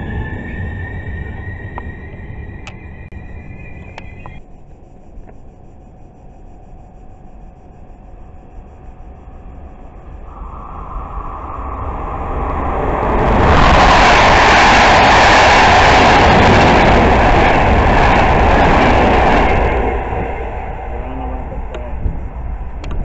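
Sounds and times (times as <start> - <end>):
train passing loudly: 0.0 - 4.4, 10.3 - 22.8
train wheels on rails: 0.0 - 4.4, 10.3 - 23.0
steady tone: 0.0 - 23.0.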